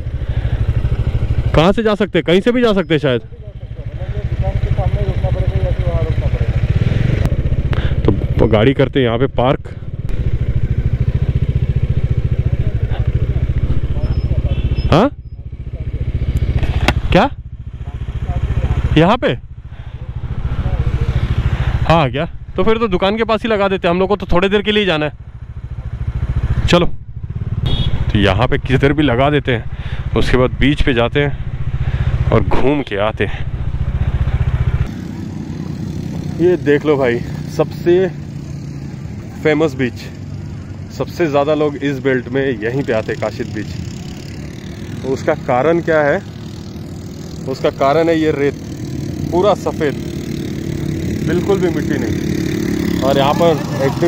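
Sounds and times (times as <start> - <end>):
low outdoor rumble: 0.0 - 54.0
motorcycle engine running: 0.0 - 54.0.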